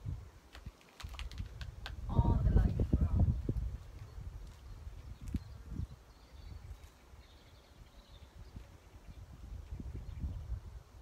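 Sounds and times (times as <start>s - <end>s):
wind gusting on microphone: 0.0s - 11.0s.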